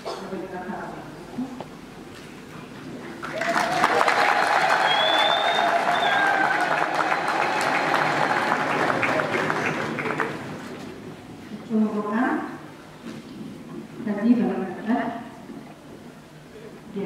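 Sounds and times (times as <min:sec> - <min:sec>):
crowd cheering: 0:03.2 - 0:10.8
crowd clapping: 0:03.2 - 0:10.9.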